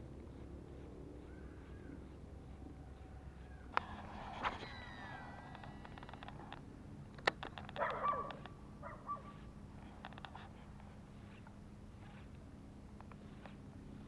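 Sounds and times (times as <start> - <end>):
faint animal calls: 1.2 - 6.5.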